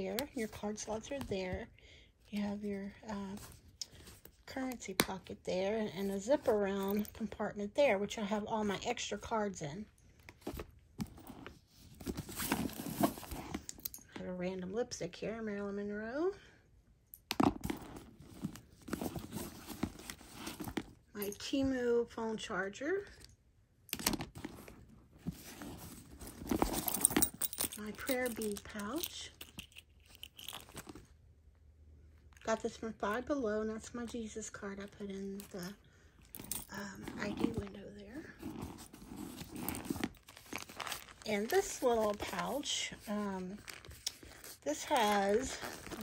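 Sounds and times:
rustling inside a handbag: 0:00.0 - 0:09.4, 0:10.0 - 0:14.4, 0:17.4 - 0:22.0, 0:24.0 - 0:31.2, 0:32.2 - 0:46.0
rummaging in a bag: 0:05.2 - 0:07.4, 0:10.2 - 0:14.3, 0:17.4 - 0:21.6, 0:24.0 - 0:31.2, 0:34.8 - 0:46.0
metallic pouch crinkling: 0:10.4 - 0:13.9, 0:17.4 - 0:20.9, 0:24.1 - 0:31.1, 0:35.4 - 0:46.0.

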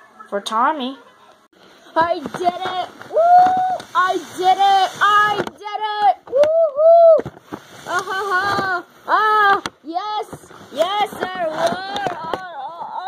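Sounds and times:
high-pitched wordless cries: 0:02.0 - 0:13.0.

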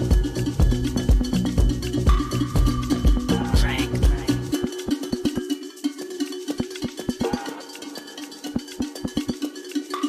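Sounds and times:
cowbell-like percussion hits: 0:00.0 - 0:10.0
electronic dance music: 0:00.0 - 0:10.0.

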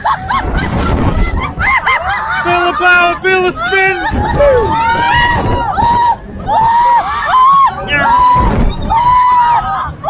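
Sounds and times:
riders whooping and shrieking: 0:00.0 - 0:10.0
wind rumbling on microphone: 0:00.0 - 0:10.0.

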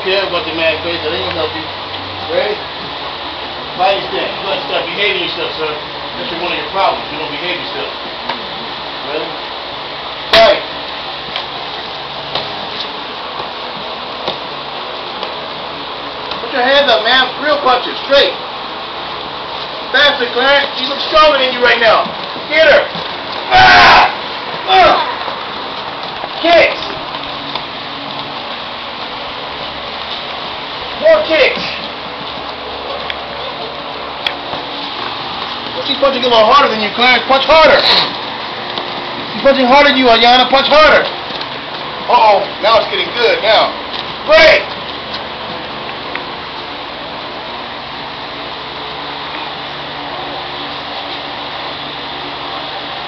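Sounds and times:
room hiss: 0:00.0 - 0:53.0.

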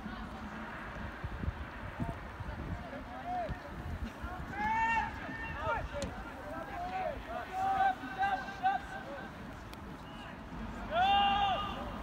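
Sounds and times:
people shouting on a field: 0:02.8 - 0:09.4, 0:10.0 - 0:12.0.

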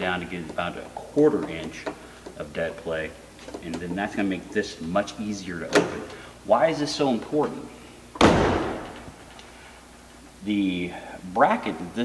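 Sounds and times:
car door slamming: 0:08.2 - 0:09.1.

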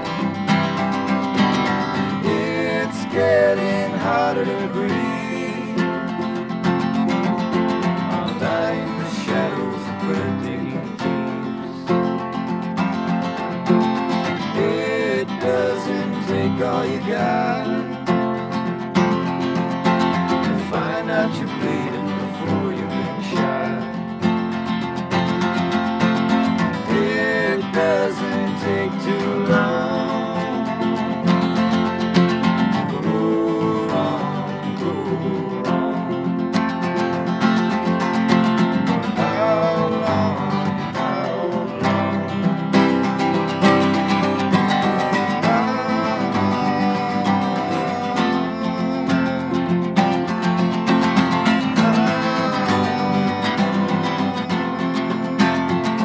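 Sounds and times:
wordless singing: 0:00.0 - 0:12.3, 0:13.6 - 0:25.0, 0:26.0 - 0:56.0
acoustic guitars strumming: 0:00.0 - 0:56.0.

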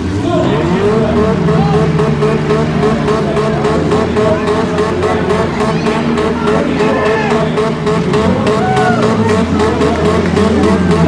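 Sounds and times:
car engines revving: 0:00.0 - 0:11.0.

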